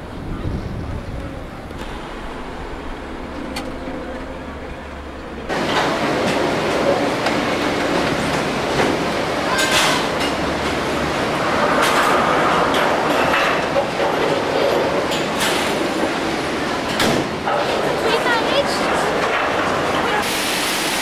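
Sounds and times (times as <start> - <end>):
gondola cabins rumbling and clattering: 0.0 - 21.0.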